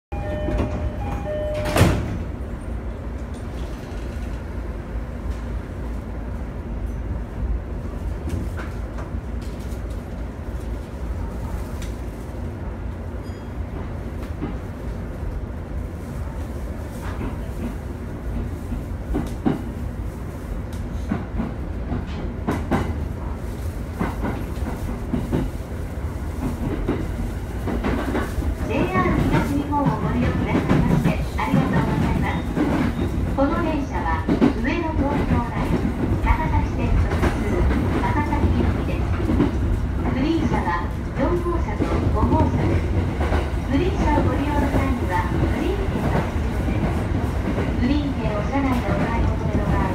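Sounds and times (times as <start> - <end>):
train car rumble: 0.1 - 49.9
train wheels clacking on rails: 17.0 - 19.8, 20.9 - 23.0, 23.9 - 25.6, 26.4 - 49.9
people talking: 28.6 - 32.5, 33.4 - 39.1, 40.1 - 42.8, 43.7 - 47.0, 47.8 - 49.9.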